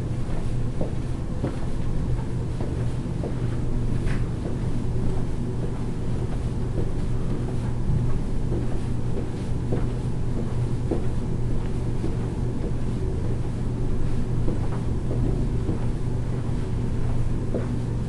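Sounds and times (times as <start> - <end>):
soft footfalls marching in place: 0.0 - 18.0
steady low hum: 0.0 - 18.0.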